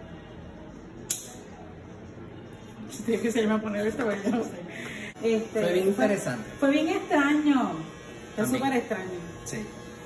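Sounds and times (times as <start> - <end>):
sharp click: 1.1 - 1.4.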